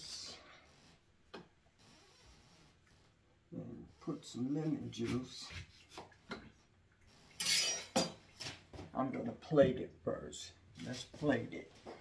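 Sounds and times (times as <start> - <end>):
knife cutting a lemon: 5.0 - 6.4.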